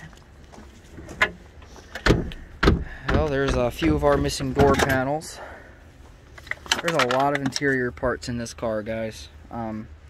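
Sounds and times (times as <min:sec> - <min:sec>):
trunk lid heavy knocks: 0:02.0 - 0:05.0.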